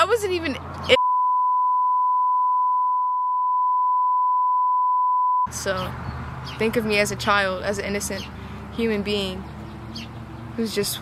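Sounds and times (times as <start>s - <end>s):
censor bleep tone: 1.0s - 5.5s.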